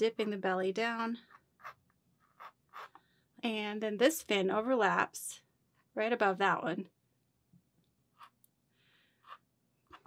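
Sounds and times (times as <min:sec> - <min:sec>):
pencil scratching on board: 0:01.6 - 0:03.0.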